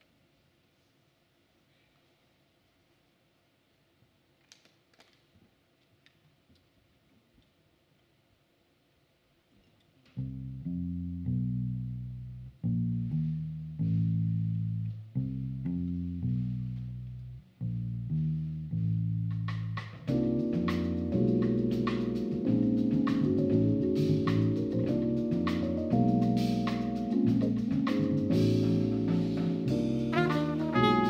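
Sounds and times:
electric bass guitar riff: 10.2s - 19.4s, 20.1s - 31.0s.

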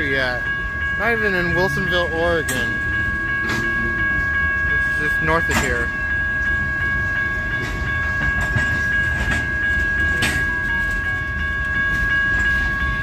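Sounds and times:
high ringing tone: 0.0s - 13.0s
train wheels rumbling on rails: 0.0s - 13.0s
rail joint clicks: 0.1s - 13.0s.

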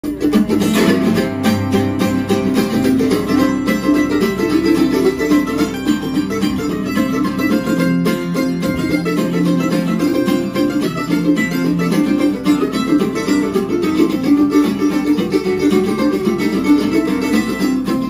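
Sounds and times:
picked mandolin notes: 0.0s - 18.0s
strummed acoustic guitar chords: 0.0s - 18.0s.

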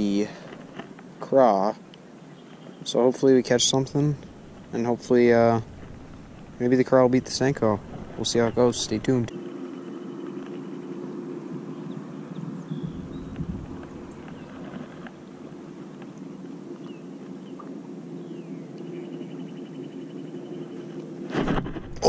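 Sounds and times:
boat motor humming: 0.0s - 22.0s.

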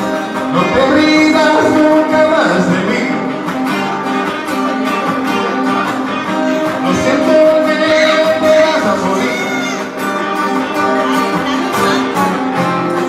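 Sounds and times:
man singing into a microphone: 0.0s - 3.8s, 6.3s - 12.1s
guitar playing: 0.0s - 13.0s.

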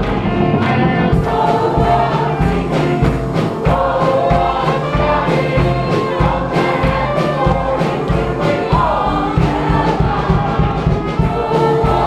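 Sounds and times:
choir singing gospel: 0.0s - 12.0s
instruments keeping a beat: 0.0s - 12.0s.

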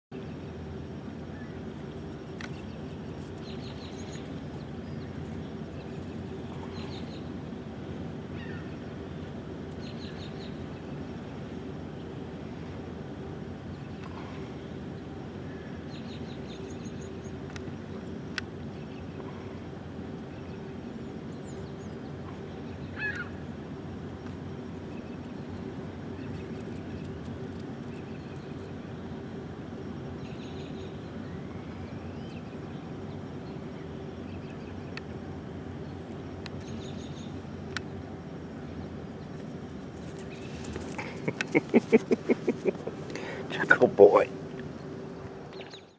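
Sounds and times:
steady low hum: 0.1s - 45.9s
birds chirping: 0.2s - 45.9s
rising bird call: 22.9s - 23.5s.

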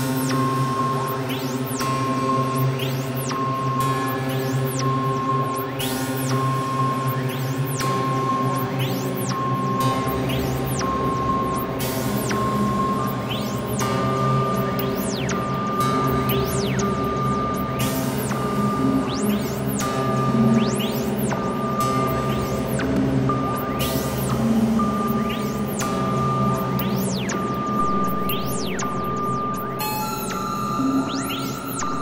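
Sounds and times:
low synth drone: 0.0s - 32.0s.

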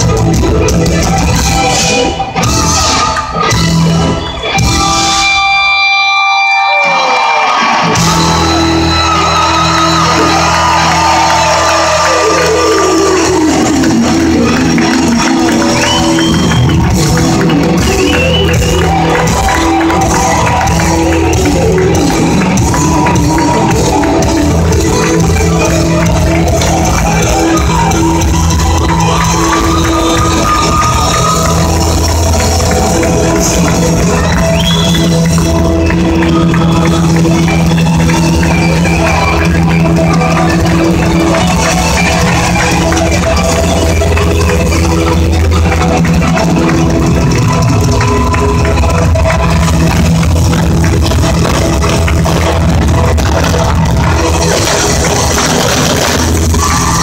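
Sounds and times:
live band playing loud music: 0.0s - 57.0s.

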